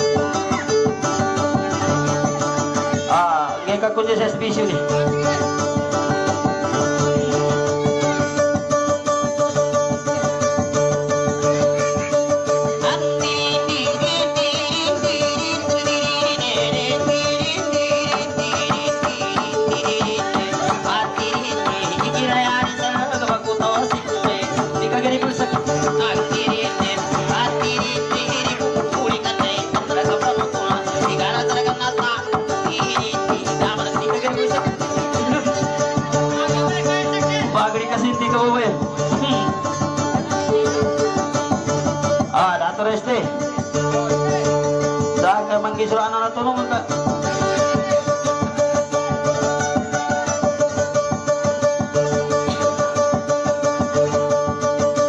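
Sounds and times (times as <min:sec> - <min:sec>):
plucked string instrument tune: 0:00.0 - 0:55.0
man singing into a microphone: 0:12.8 - 0:41.2.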